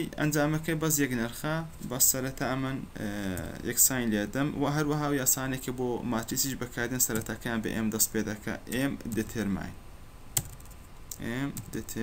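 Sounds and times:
keyboard keys typing: 0:10.4 - 0:11.8.

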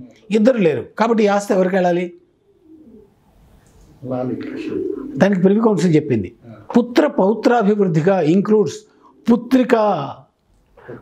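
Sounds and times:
pigeon cooing: 0:02.2 - 0:06.7, 0:08.8 - 0:09.5, 0:10.8 - 0:11.0.

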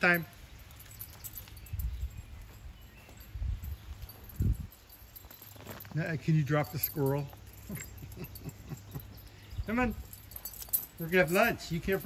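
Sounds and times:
soft thumps of footsteps on grass: 0:00.3 - 0:07.6.

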